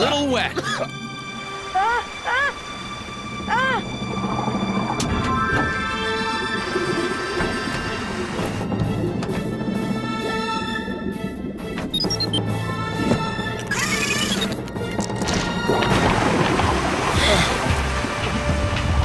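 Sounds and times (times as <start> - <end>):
cartoon background music: 0.0 - 19.0.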